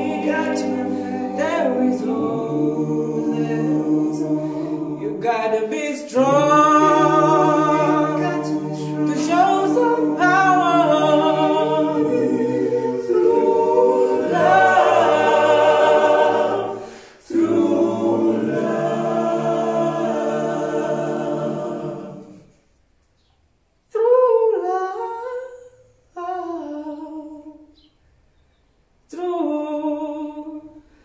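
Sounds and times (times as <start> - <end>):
male a cappella group singing: 0.0 - 22.5.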